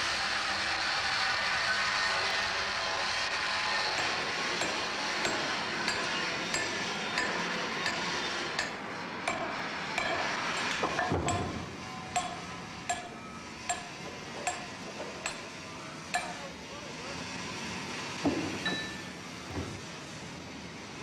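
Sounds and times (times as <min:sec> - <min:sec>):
foundry machinery roar: 0:00.0 - 0:21.0
hammer striking iron: 0:03.9 - 0:15.5, 0:16.1 - 0:16.5, 0:18.3 - 0:19.1.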